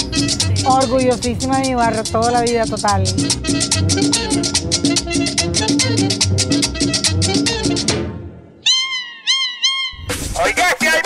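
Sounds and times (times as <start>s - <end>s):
salsa music: 0.0s - 11.0s.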